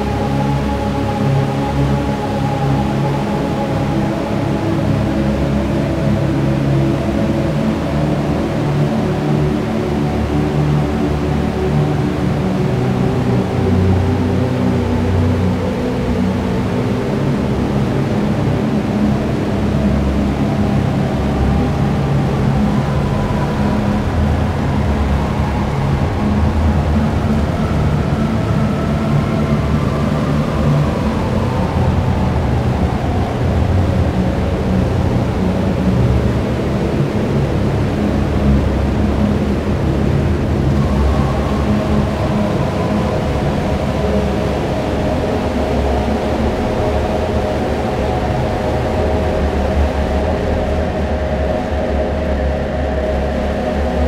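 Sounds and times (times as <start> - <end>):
dark ambient synth drone: 0.0 - 54.0.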